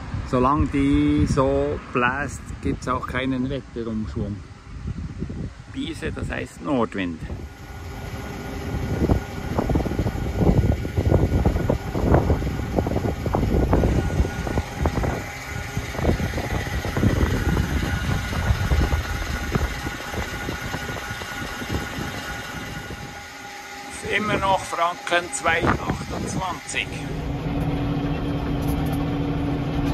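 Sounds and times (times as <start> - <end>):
wind buffeting microphone: 0.0 - 23.4, 24.0 - 29.9
machine hum: 7.2 - 29.9
thin whining tones: 7.4 - 29.9.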